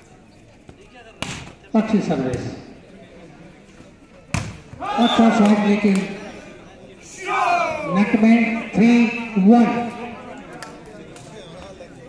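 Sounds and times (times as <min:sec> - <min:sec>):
loud shouting voices: 0:04.7 - 0:10.3.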